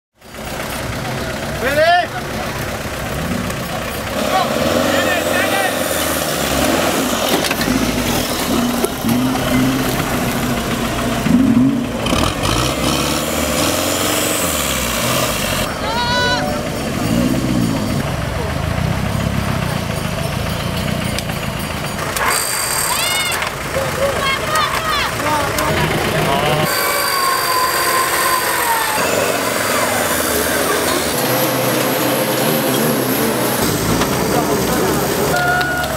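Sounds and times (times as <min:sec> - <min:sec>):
off-road engines revving: 0:00.2 - 0:35.9
people shouting: 0:15.7 - 0:16.8, 0:22.8 - 0:33.0, 0:34.8 - 0:35.9.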